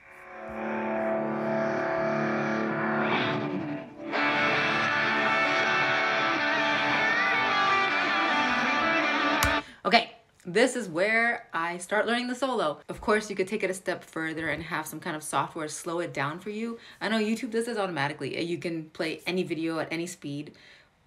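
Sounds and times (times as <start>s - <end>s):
electric guitar solo: 0.0s - 9.6s.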